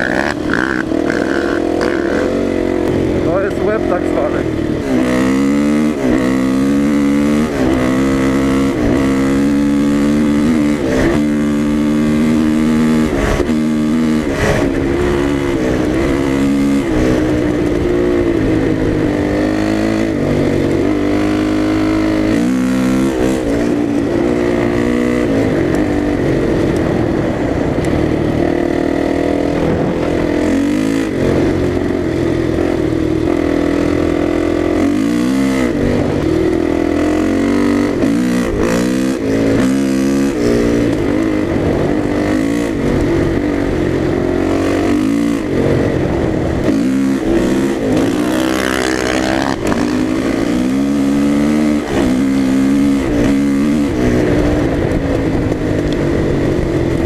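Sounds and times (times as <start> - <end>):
dirt bike engine revving: 0.0 - 55.6.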